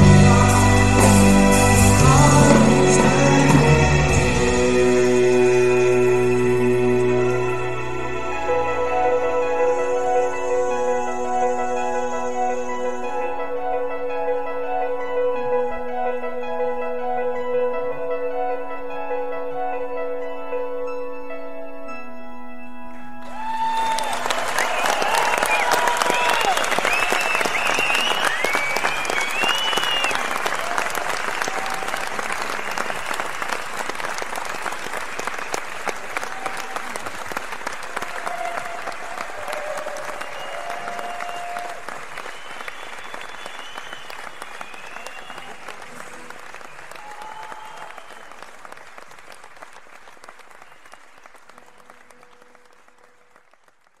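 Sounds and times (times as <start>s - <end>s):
audience applauding and cheering: 0.0s - 13.1s, 23.2s - 54.0s
whistles: 24.5s - 30.5s, 32.3s - 33.5s, 39.9s - 48.5s, 50.6s - 51.2s.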